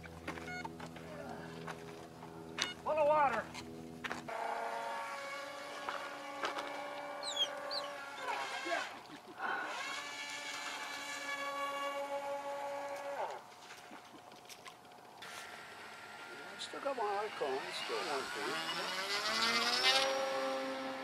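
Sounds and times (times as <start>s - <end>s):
model boat motor whining: 0.0s - 13.5s, 14.8s - 21.0s.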